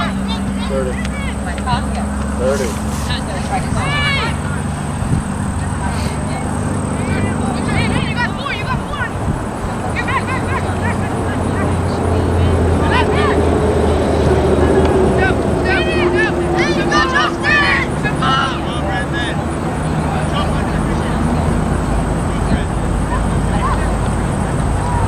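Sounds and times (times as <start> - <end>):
distant shouts and calls: 0.0 - 25.0
steady low rumble: 0.0 - 25.0.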